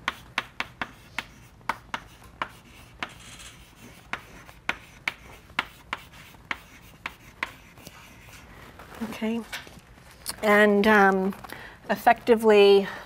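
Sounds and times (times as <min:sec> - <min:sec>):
chalk tapping on blackboard: 0:00.0 - 0:08.4
chalk scraping: 0:00.1 - 0:08.5.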